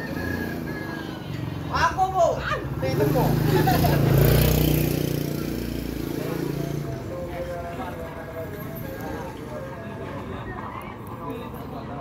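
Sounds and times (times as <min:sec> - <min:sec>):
vehicle engine passing by: 0:00.0 - 0:09.6.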